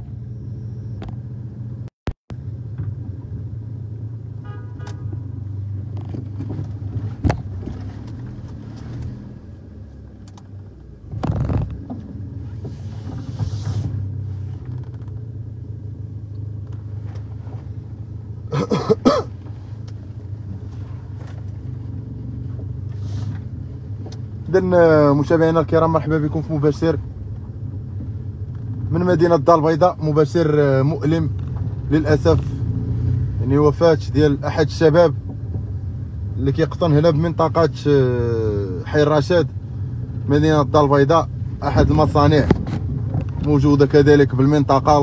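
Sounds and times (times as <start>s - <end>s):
car engine idling: 0.0s - 45.0s.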